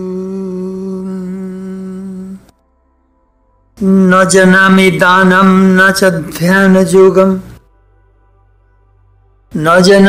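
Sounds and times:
humming drone note: 0:00.0 - 0:04.7.

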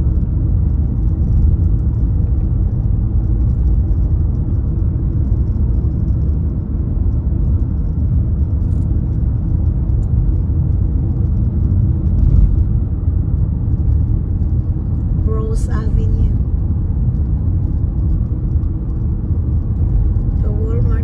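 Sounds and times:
road and tyre rumble: 0:00.0 - 0:21.0.

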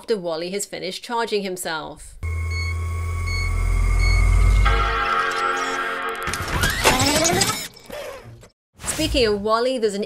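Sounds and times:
computer startup chime: 0:02.3 - 0:06.8.

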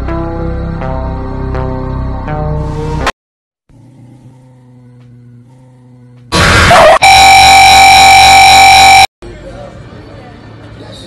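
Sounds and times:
loud distorted noise blast: 0:06.4 - 0:09.1.

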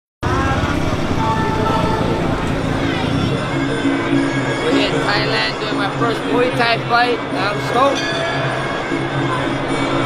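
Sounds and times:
auto-rickshaw engine running: 0:00.2 - 0:07.7
voices: 0:00.2 - 0:10.0
music: 0:00.3 - 0:10.0.

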